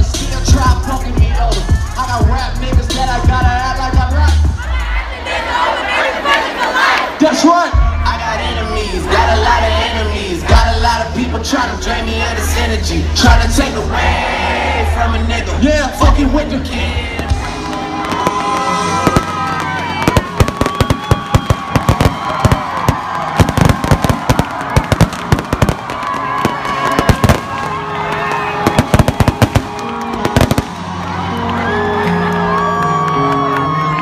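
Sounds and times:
deep bass notes: 0.0 - 5.0, 7.7 - 20.3
crowd noise: 0.0 - 34.0
music: 0.0 - 34.0
fireworks bangs and crackles: 17.2 - 31.0.

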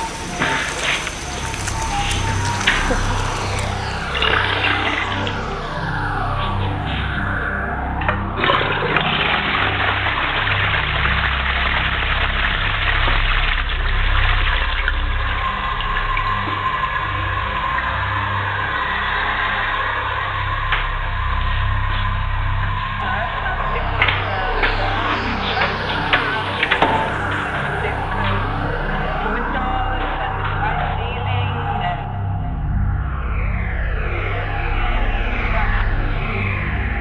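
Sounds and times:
rushing noise wash: 0.0 - 37.0
sustained deep bass: 0.0 - 37.0.

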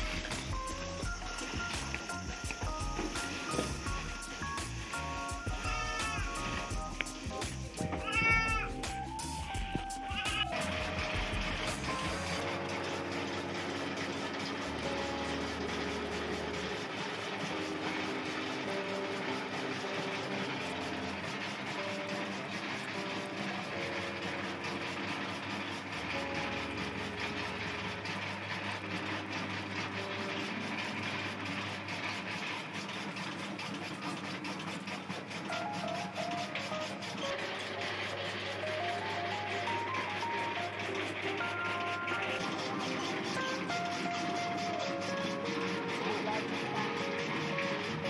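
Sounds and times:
background music: 0.0 - 32.0, 35.5 - 48.0
electric chaff cutter running: 0.0 - 48.0
goat bleating: 8.0 - 8.7.

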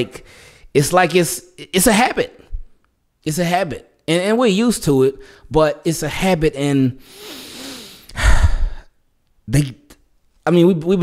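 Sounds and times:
man sighing heavily: 7.0 - 8.9.

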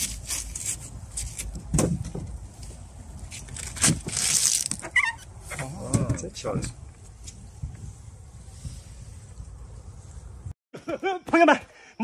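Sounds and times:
watermelon cracking and tearing: 0.0 - 1.7, 3.3 - 5.0.

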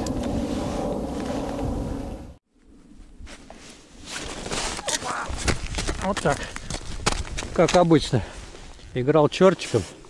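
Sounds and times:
wind on microphone: 0.0 - 3.5.

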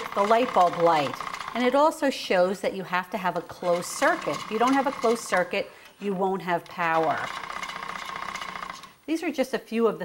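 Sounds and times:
hand-cranked generator whirring: 0.0 - 1.8, 3.4 - 8.9.

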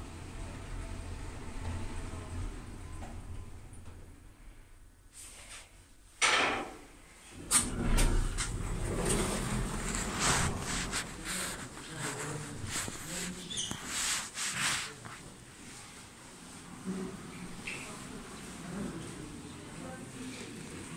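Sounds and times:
lift doors sliding open: 0.0 - 4.3, 7.4 - 11.8
background voices: 7.6 - 13.8
footsteps: 7.6 - 15.4.

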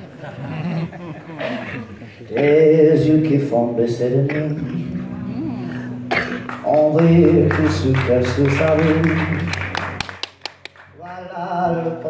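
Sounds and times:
man singing: 2.3 - 6.0, 6.6 - 9.8, 11.0 - 12.0
acoustic guitar: 2.3 - 11.0
people clapping: 6.1 - 12.0.

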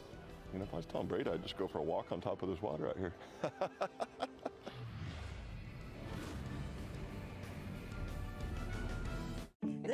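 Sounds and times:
tv bumper music with deep bass: 4.8 - 9.5.

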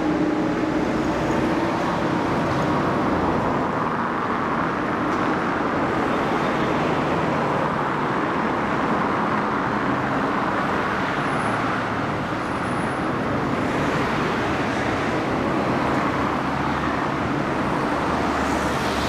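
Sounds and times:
road traffic rushing: 0.0 - 19.0.

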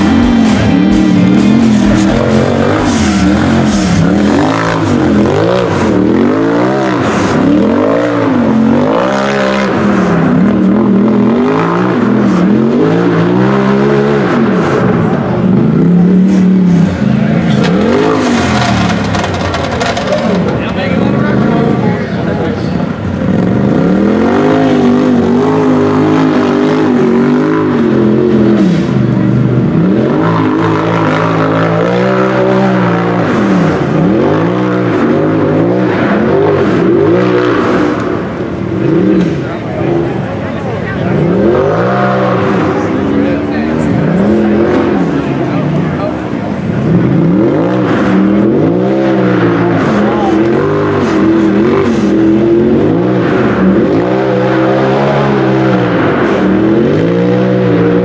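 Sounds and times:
engine revving hard: 0.0 - 21.9, 22.9 - 58.0.

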